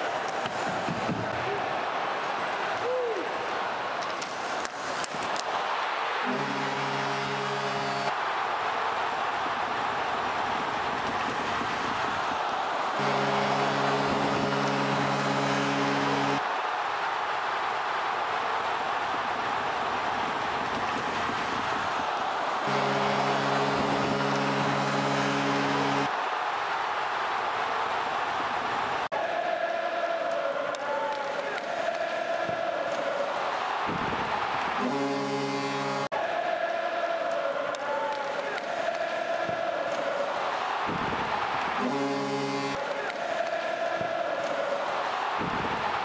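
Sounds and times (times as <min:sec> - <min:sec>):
arena crowd cheering: 0:00.0 - 0:46.0
arena goal horn blasts: 0:06.2 - 0:08.6, 0:11.2 - 0:16.5, 0:20.9 - 0:26.2, 0:34.7 - 0:36.2, 0:41.7 - 0:43.9.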